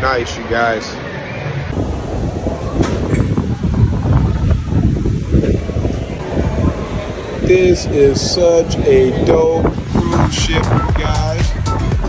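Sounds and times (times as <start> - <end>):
wind buffeting microphone: 1.7 - 11.6.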